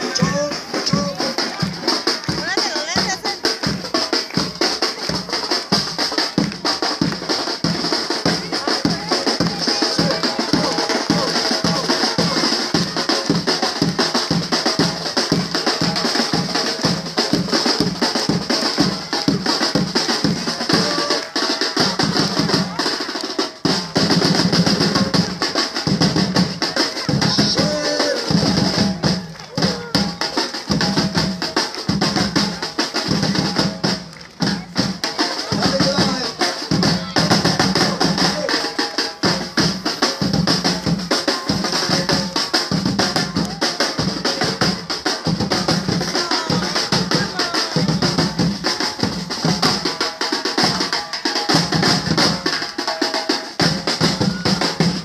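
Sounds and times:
snare drum patterns: 0.0s - 55.0s.

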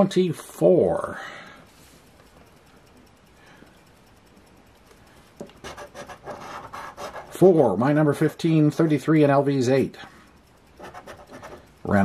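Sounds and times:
coin scratching lottery ticket: 5.6s - 7.5s, 10.8s - 12.0s.

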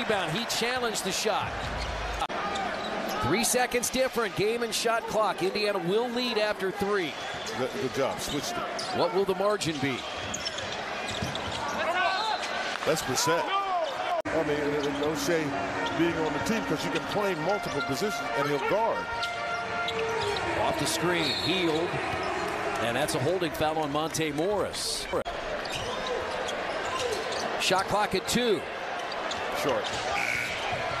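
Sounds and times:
arena crowd noise: 0.0s - 31.0s
faint basketball court sounds: 0.0s - 31.0s
sneakers squeaking on hardwood: 10.0s - 12.6s, 25.6s - 27.5s.

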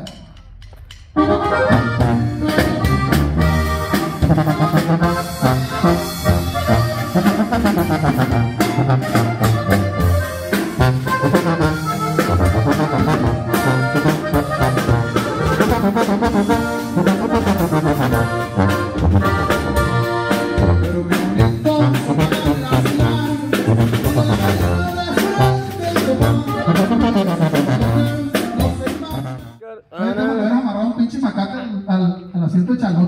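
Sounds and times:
drum kit dance beat: 0.0s - 29.6s
button accordion melody: 1.2s - 29.7s
guitar: 1.2s - 30.4s
sousaphone bass line: 1.2s - 30.7s.

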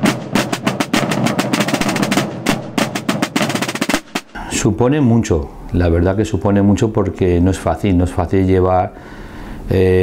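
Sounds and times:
drums rolling rhythm: 0.0s - 4.7s.

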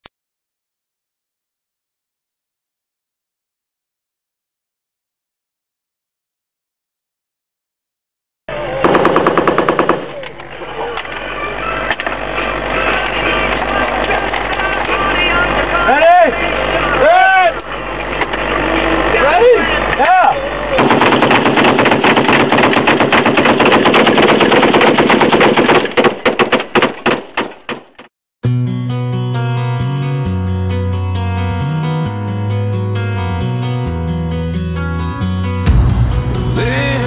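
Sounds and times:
machine-gun fire: 8.8s - 10.2s, 20.8s - 28.1s.

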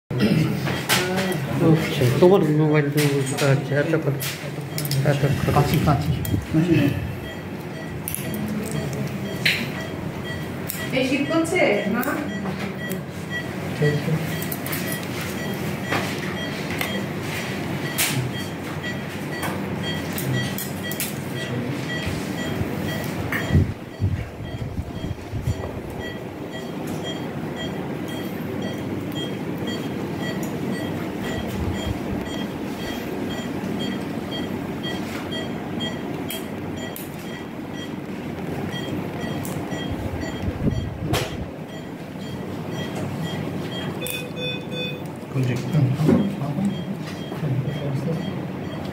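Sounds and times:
steady machine noise: 0.1s - 48.9s
short high beeps: 38.7s - 45.0s.

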